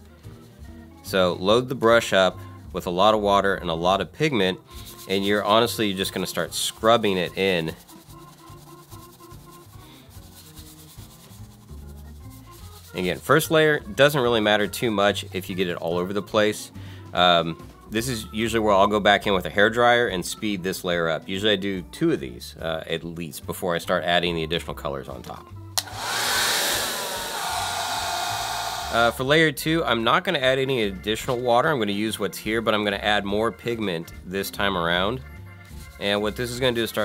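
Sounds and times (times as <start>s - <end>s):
brush scrubbing foam: 4.7s - 13.3s, 25.9s - 29.2s
hair dryer blowing: 25.8s - 29.2s.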